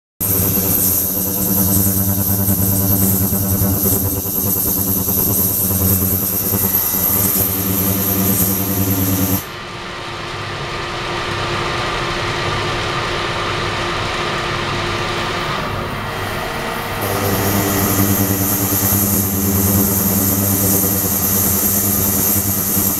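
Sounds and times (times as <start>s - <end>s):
high hiss: 0.2s - 9.5s, 17.0s - 22.9s
machine hum: 0.2s - 9.8s, 15.0s - 22.9s.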